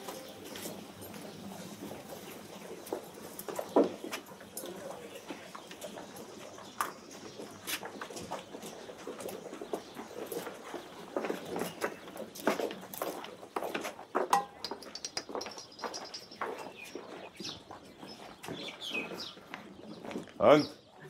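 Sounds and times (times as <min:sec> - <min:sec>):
footsteps on pavement: 0:00.0 - 0:20.7.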